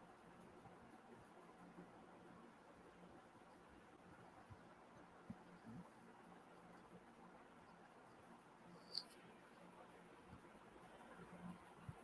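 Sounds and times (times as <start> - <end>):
sharp high-pitched click: 8.8 - 9.2.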